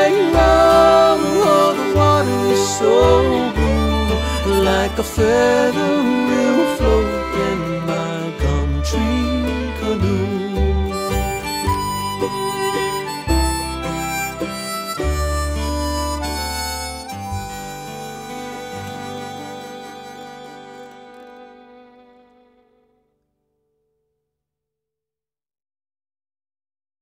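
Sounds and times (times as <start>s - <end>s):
harmonica: 0.0s - 22.4s
bass: 0.0s - 22.6s
guitar: 0.0s - 24.0s.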